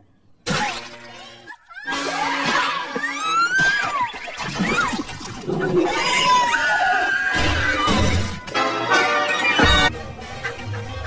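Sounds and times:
shrill cartoon cry: 1.4s - 4.9s, 5.8s - 8.2s.

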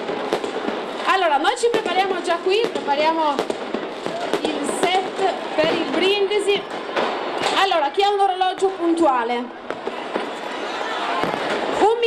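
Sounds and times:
firecrackers crackling and popping: 0.0s - 12.0s
large outdoor crowd: 0.0s - 12.0s.

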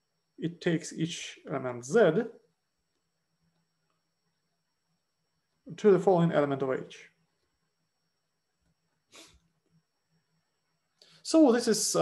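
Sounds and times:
soft breath: 9.1s - 9.5s.

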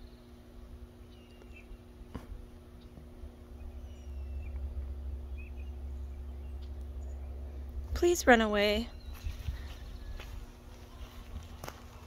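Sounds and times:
faint hum: 0.0s - 12.0s
bird chirps: 1.0s - 1.9s, 2.8s - 7.7s, 8.8s - 11.1s
low rumble: 2.3s - 12.0s.

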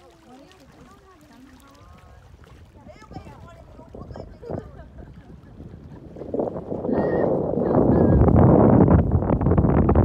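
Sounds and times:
choppy lake water: 0.0s - 10.0s
wind on microphone: 1.6s - 10.0s.

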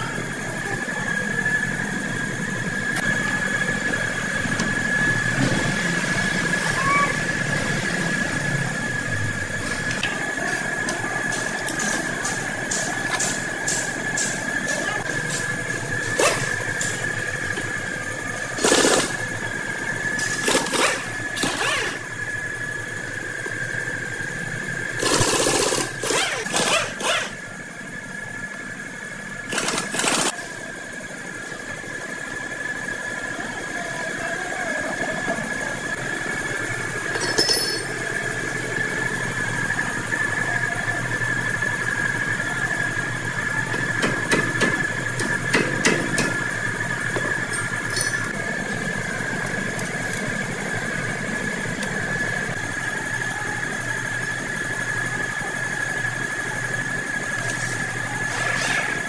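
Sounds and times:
machine hum with high whine: 0.0s - 59.0s
pneumatic impact wrench rattling: 9.8s - 17.3s, 18.5s - 19.3s, 20.1s - 22.2s, 25.0s - 27.5s, 29.5s - 30.5s
metallic clinks of tools: 37.1s - 38.0s, 47.5s - 48.4s.

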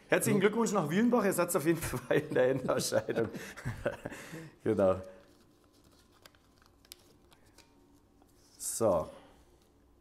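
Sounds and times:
paper rustling and clicks: 5.2s - 7.8s.

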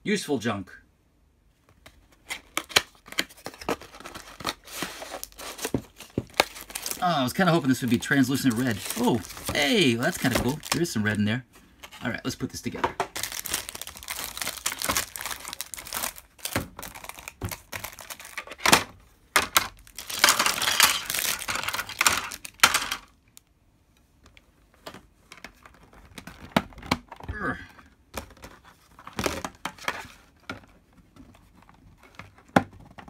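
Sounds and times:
plastic packaging crinkling: 2.4s - 11.2s, 13.1s - 18.7s, 19.5s - 23.1s.

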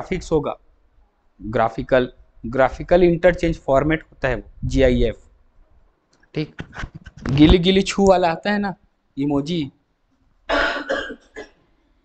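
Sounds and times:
man coughing: 10.5s - 11.6s.

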